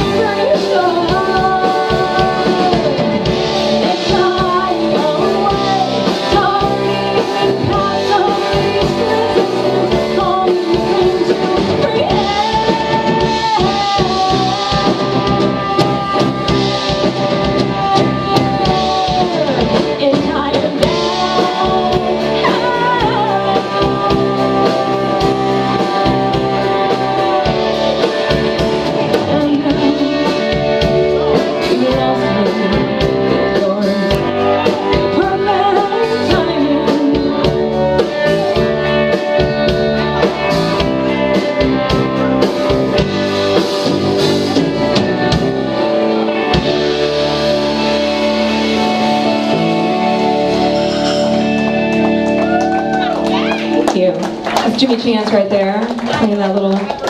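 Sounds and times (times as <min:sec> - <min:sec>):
woman singing: 0:00.0 - 0:43.2, 0:52.4 - 0:57.0
bass guitar: 0:00.0 - 0:57.0
drum kit: 0:00.0 - 0:57.0
electric guitar: 0:00.0 - 0:57.0.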